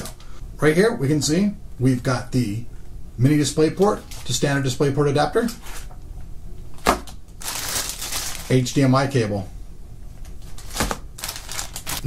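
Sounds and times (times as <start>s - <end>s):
plastic packaging crinkling: 4.0s - 4.4s, 7.0s - 8.9s, 10.4s - 12.0s.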